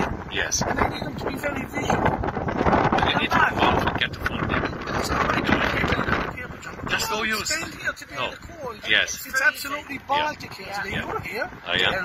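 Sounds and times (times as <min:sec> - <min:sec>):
street traffic: 0:00.0 - 0:12.0
wind buffeting microphone: 0:00.0 - 0:12.0.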